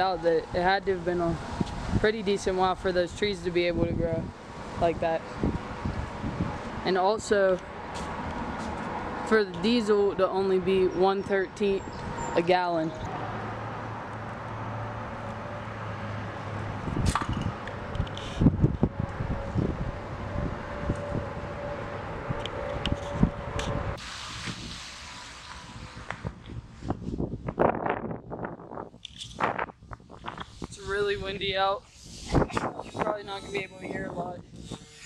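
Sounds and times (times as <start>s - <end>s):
wind buffeting microphone: 0.0s - 24.9s, 25.6s - 35.0s.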